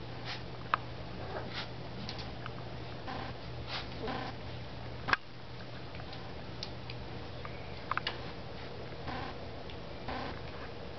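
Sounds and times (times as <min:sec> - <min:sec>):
steady low hum: 0:00.0 - 0:10.9.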